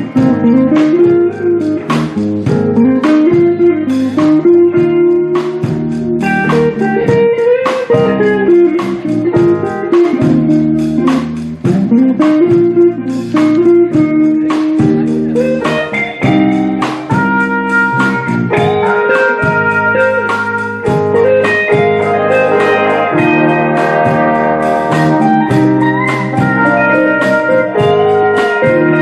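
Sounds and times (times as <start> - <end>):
big band playing: 0.0 - 29.0
rhythm section beat: 0.0 - 29.0
saxophone and horn lines: 17.2 - 29.0.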